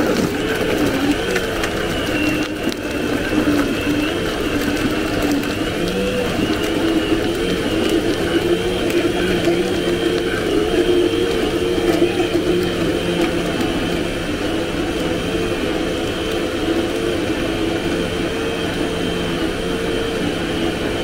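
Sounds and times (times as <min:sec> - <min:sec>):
blender motor running: 0:00.0 - 0:21.0.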